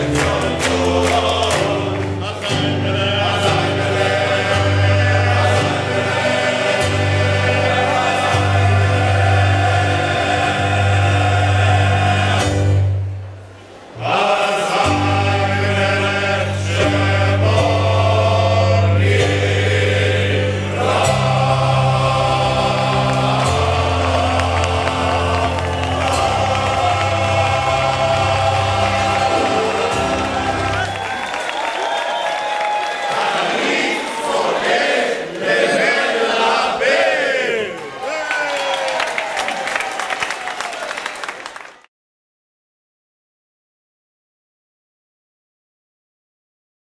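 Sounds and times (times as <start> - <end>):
male choir singing: 0.0 - 12.8, 14.0 - 31.2, 33.0 - 37.8
crowd voices: 20.4 - 38.9.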